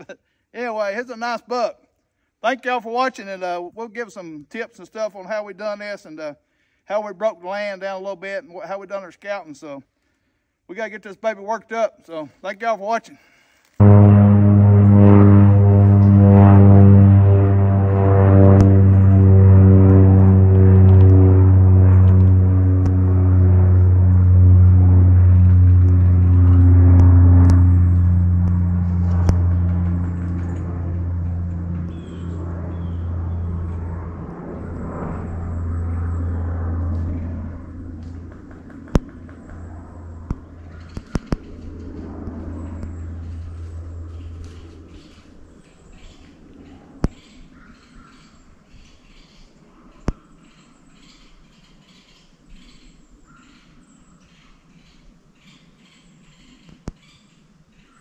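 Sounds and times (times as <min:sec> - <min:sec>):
faint outdoor sound: 0:00.0 - 0:58.0
deep gong-like tone ringing: 0:13.8 - 0:45.2.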